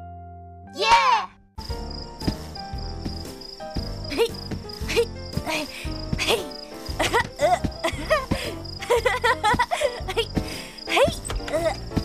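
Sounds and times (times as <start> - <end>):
background music: 0.0 - 12.0
child calling out: 0.8 - 1.4
crickets chirping: 1.6 - 12.0.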